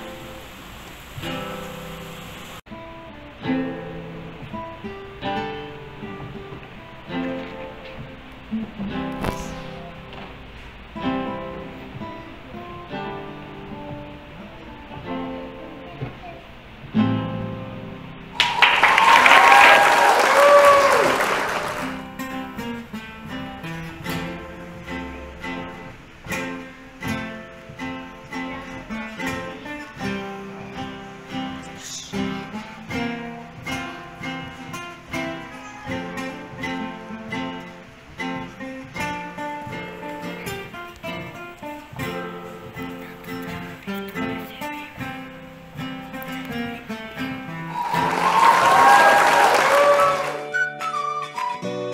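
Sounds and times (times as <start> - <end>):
classical guitars plucked duet: 0.0 - 18.6, 21.6 - 48.4, 50.4 - 51.9
applause and cheers: 18.3 - 22.1, 47.7 - 51.6.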